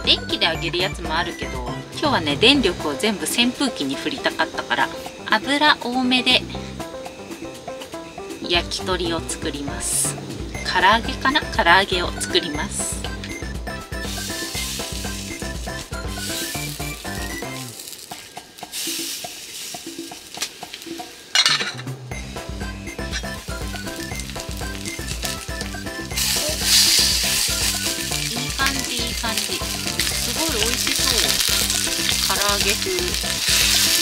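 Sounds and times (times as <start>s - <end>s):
background music with steady beat: 0.0s - 34.0s
sharp sizzling burst: 2.1s - 13.0s, 13.8s - 21.5s, 22.1s - 34.0s
chicken sizzling in oil: 13.3s - 21.4s, 22.1s - 34.0s.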